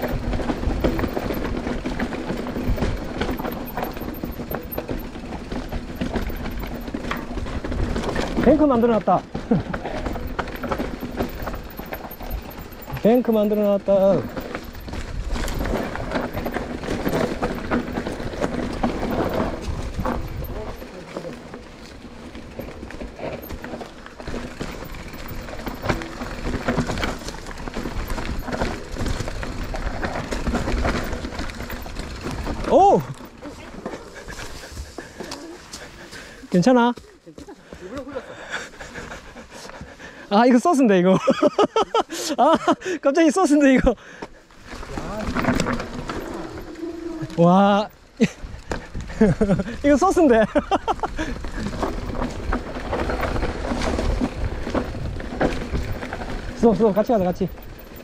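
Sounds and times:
bike rattling and knocking: 0.0s - 35.3s, 43.4s - 58.0s
bike tyre noise on dirt: 0.0s - 40.9s, 43.5s - 58.0s
wind rumbling on microphone: 14.3s - 20.9s, 51.2s - 56.6s.

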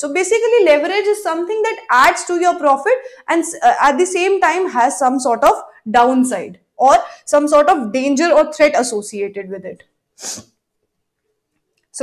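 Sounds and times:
woman speaking: 0.0s - 9.8s
woman's sharp breath: 10.2s - 10.5s.

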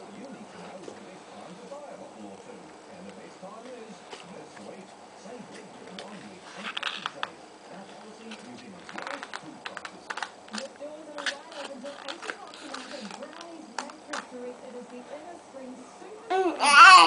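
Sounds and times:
paper card crackling: 5.6s - 14.3s
baby babbling and humming: 16.3s - 17.0s.

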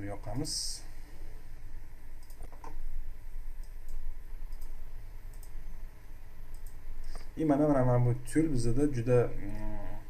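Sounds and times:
steady low hum: 0.0s - 10.0s
computer mouse clicks: 2.2s - 2.8s, 3.6s - 5.6s, 6.5s - 7.3s.

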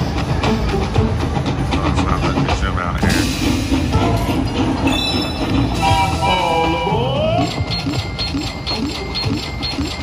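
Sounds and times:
steam locomotive chugging: 0.0s - 10.0s.

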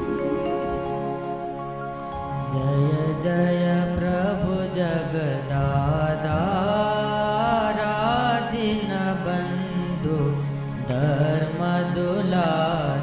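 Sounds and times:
instrumental drone: 0.0s - 12.6s
man singing a devotional chant: 2.4s - 13.0s.

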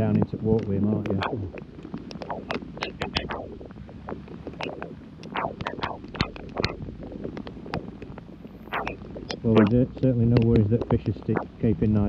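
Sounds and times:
heavy rain drops hitting: 0.0s - 12.0s
low wind rumble on microphone: 0.0s - 12.0s.

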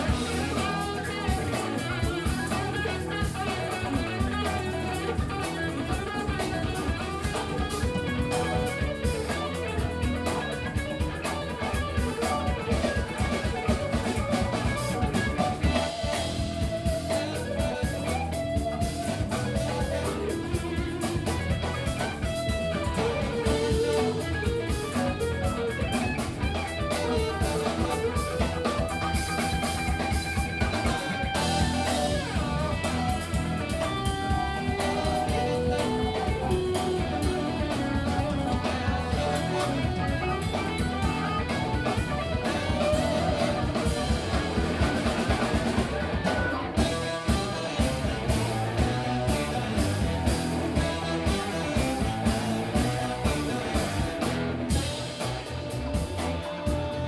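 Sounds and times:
saxophone: 0.0s - 53.4s
funk band playing: 0.0s - 57.0s.

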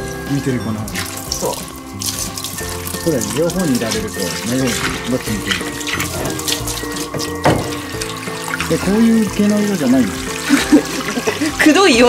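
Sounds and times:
background music: 0.0s - 12.0s
water running from shower hose: 0.0s - 12.0s.

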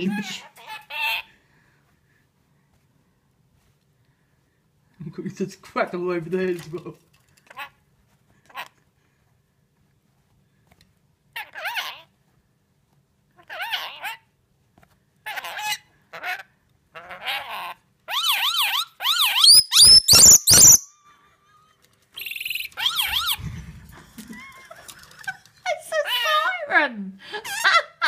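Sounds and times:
parrot imitating a siren: 18.1s - 20.9s.

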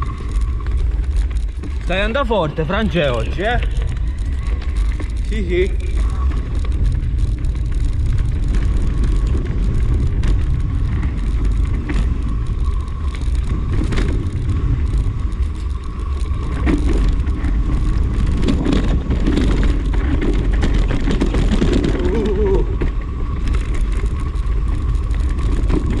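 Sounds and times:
bike rattling over bumps: 0.0s - 26.0s
wind rumble on microphone: 0.0s - 26.0s.

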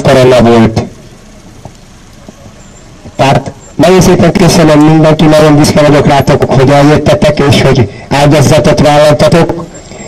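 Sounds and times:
low rumble of distant traffic: 0.0s - 10.0s.

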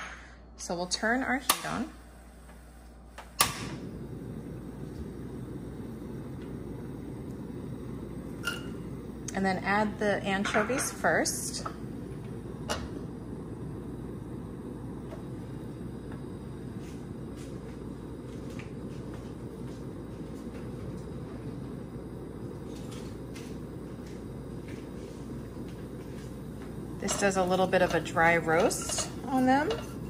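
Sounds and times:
gas stove burner running: 0.0s - 30.0s.

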